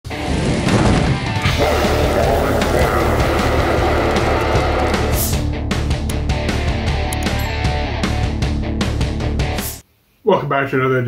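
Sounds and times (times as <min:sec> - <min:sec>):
heavy rock music: 0:00.1 - 0:09.8.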